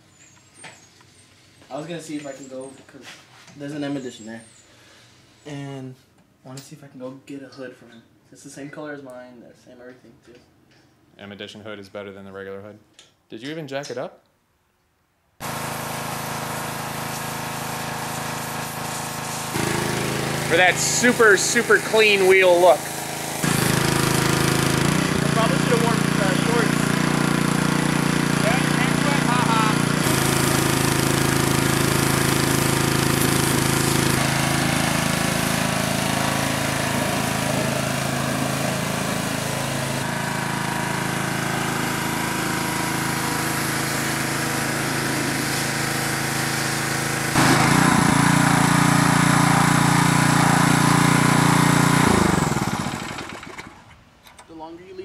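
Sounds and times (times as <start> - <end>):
water spraying onto a wheel: 15.4 - 53.6
pressure washer engine running: 15.4 - 54.0.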